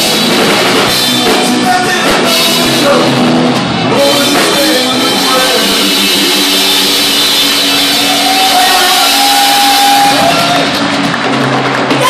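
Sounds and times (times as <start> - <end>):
blues-rock band playing loudly: 0.0 - 12.0.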